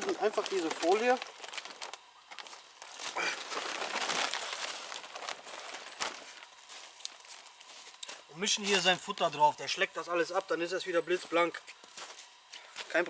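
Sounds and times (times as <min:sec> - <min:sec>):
plastic tarp rustling: 0:00.0 - 0:09.1.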